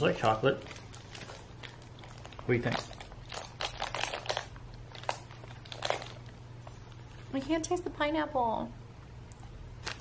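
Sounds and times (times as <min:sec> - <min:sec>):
low steady hum: 0:00.0 - 0:10.0
person chewing chocolate: 0:00.6 - 0:06.4.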